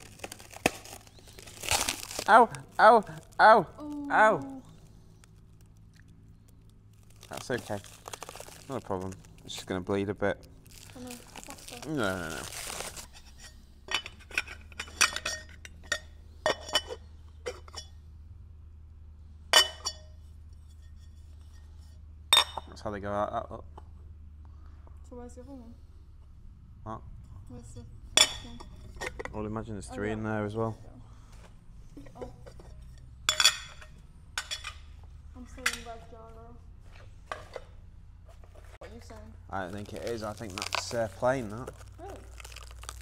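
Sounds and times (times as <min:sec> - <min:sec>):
plastic tearing: 0:00.0 - 0:03.4, 0:05.2 - 0:09.7, 0:10.4 - 0:13.1, 0:39.6 - 0:43.0
plastic wrap crinkling: 0:00.0 - 0:13.2, 0:39.6 - 0:43.0
metal wheel halves clinking: 0:13.9 - 0:18.0, 0:32.0 - 0:35.0.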